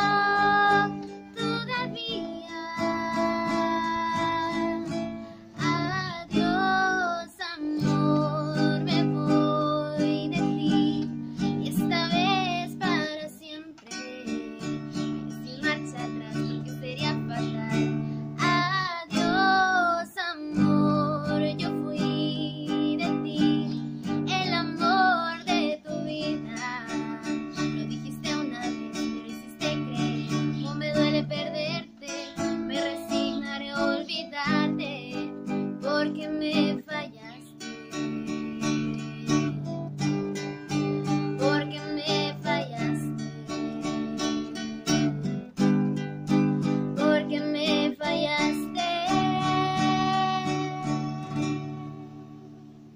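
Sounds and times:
woman singing: 0.0s - 45.7s, 46.3s - 52.6s
strummed acoustic guitar: 0.0s - 52.9s.

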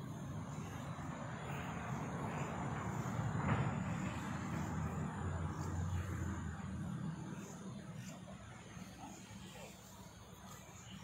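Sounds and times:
distant engine rumble: 0.0s - 11.0s.

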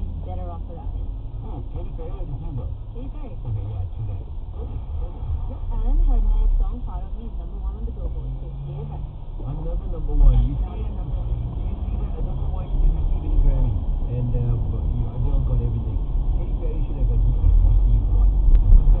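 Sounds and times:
car engine and tyres rumbling: 0.0s - 19.0s
muffled voices talking: 0.0s - 19.0s.

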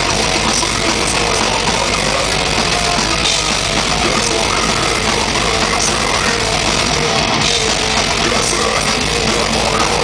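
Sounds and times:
death metal band playing live: 0.0s - 10.0s.

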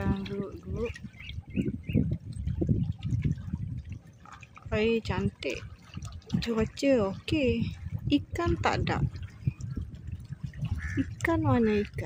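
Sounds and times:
water lapping against rocks: 0.0s - 12.0s
wind rumble on microphone: 0.0s - 12.0s.

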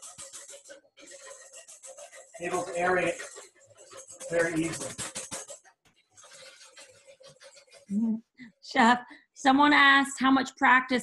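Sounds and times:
whisk beating egg whites: 0.0s - 7.9s.

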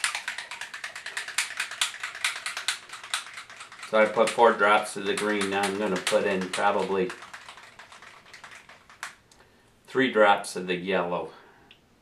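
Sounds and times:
clicking rattle: 0.0s - 9.4s
plastic paint bottle shaken: 0.0s - 9.4s.

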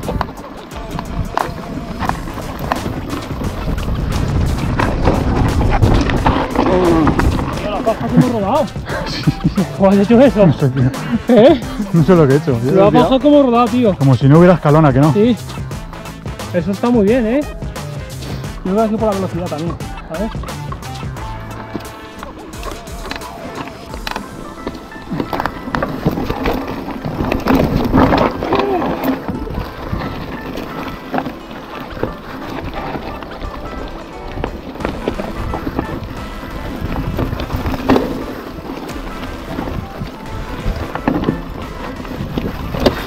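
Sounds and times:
background music: 0.0s - 43.0s
bike knocking on bumps: 0.0s - 43.0s
mountain bike rattling on rocky trail: 0.0s - 43.0s.

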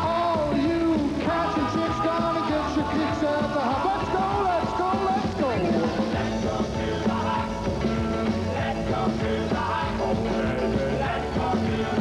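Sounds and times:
bass: 0.0s - 12.0s
drums and cymbals: 0.0s - 12.0s
male vocal group singing: 0.0s - 12.0s
piano: 0.0s - 12.0s.

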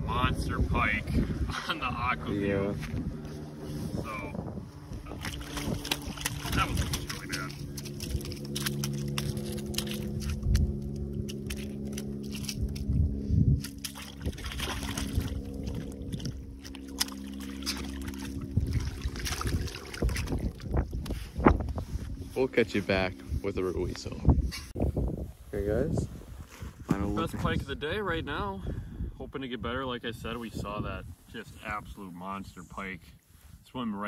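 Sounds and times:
low motor hum: 0.0s - 25.2s
fish splashing in water: 5.1s - 12.9s, 13.6s - 20.8s.

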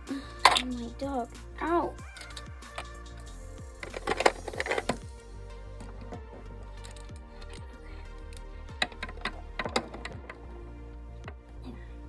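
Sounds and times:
background music: 0.0s - 12.0s
plastic toy pieces clicking: 3.8s - 5.0s.

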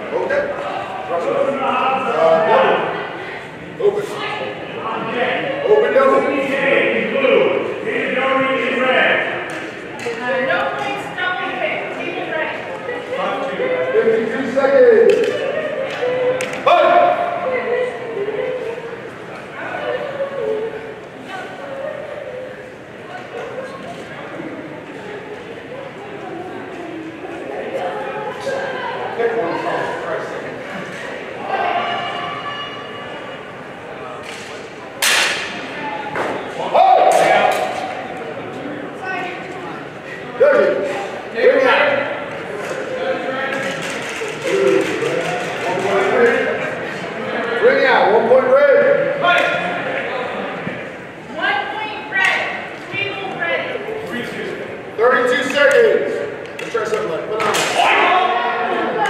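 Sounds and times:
voices echoing in a hall: 0.0s - 59.0s.

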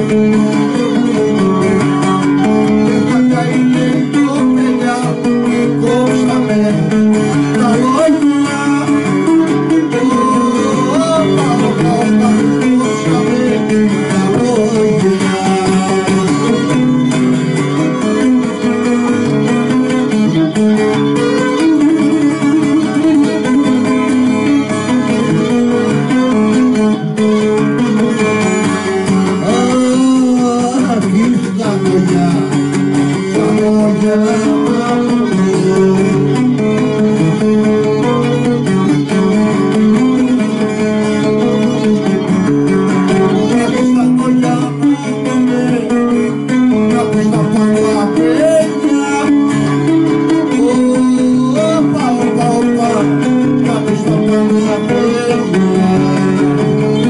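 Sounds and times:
man singing: 0.0s - 28.4s, 29.0s - 57.0s
plucked lute accompaniment: 0.0s - 57.0s.

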